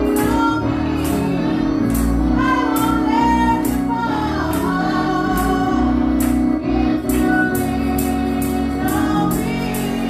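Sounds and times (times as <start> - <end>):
live band music: 0.0 - 10.0
women's group singing gospel: 0.0 - 10.0.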